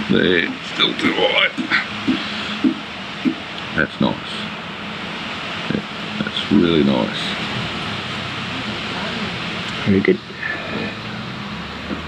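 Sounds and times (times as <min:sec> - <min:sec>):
person speaking: 0:00.0 - 0:04.5
electric fan whirring: 0:00.0 - 0:12.0.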